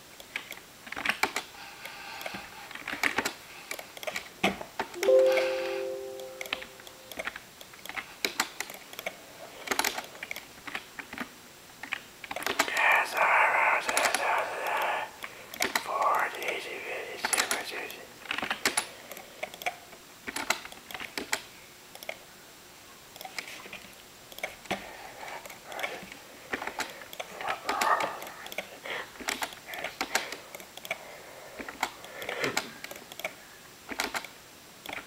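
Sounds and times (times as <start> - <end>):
muffled voice: 12.7 - 15.2, 15.8 - 18.1
typing on computer keyboard: 31.6 - 34.3.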